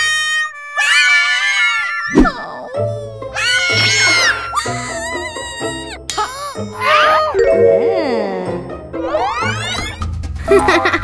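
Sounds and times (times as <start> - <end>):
cartoon characters wailing: 0.0 - 7.4
background music: 2.2 - 11.0.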